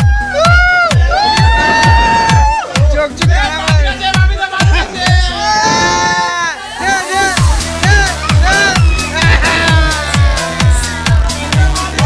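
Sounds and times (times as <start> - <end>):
pounding kick drum: 0.0 - 6.0, 7.4 - 12.0
electronic dance music: 0.0 - 12.0
people cheering and shouting: 0.0 - 12.0.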